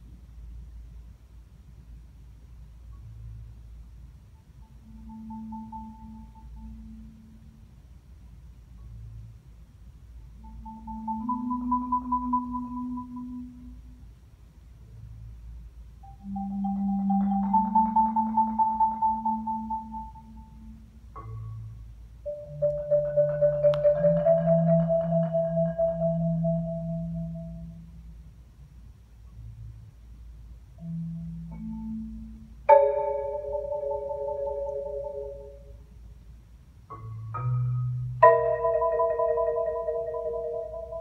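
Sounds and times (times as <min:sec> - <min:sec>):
solo marimba: 0:04.4 - 0:07.6, 0:10.3 - 0:14.0, 0:16.0 - 0:28.0, 0:30.8 - 0:35.9, 0:36.9 - 0:41.0.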